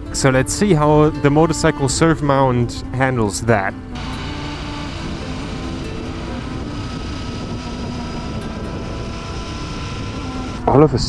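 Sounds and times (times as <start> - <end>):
wind and road noise: 0.0 - 11.0
motorcycle engine cruising: 3.3 - 11.0.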